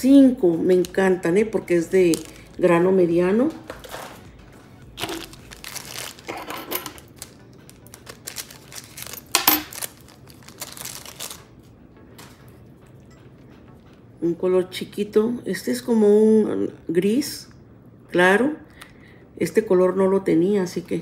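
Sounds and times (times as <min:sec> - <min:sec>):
plastic packages rustling: 0:00.7 - 0:12.5.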